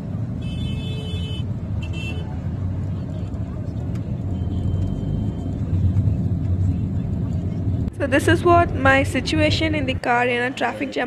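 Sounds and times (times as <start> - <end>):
low rumble of city traffic: 0.0 - 11.0.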